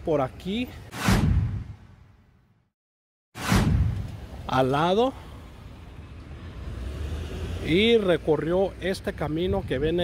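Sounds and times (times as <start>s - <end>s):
road traffic rumble: 3.4s - 10.0s.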